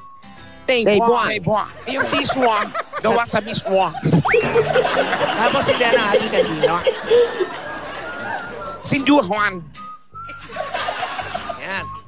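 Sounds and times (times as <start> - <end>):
people laughing: 1.8 - 8.9, 10.3 - 11.8.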